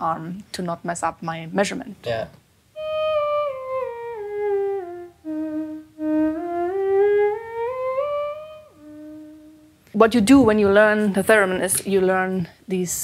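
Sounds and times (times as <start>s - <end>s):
theremin playing a scale: 2.8s - 9.8s.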